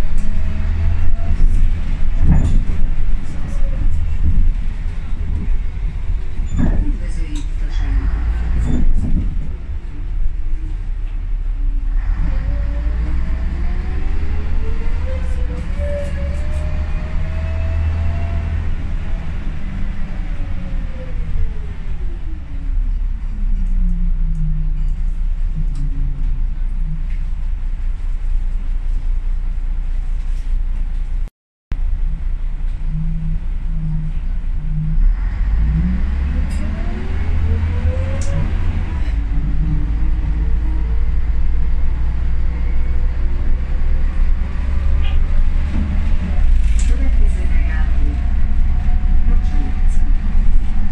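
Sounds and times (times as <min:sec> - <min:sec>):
bus interior rumble: 0:00.0 - 0:50.9.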